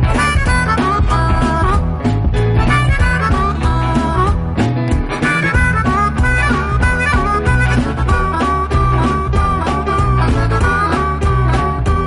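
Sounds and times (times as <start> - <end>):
blues band backing: 0.0 - 12.0
harmonica playing lead: 0.0 - 12.0.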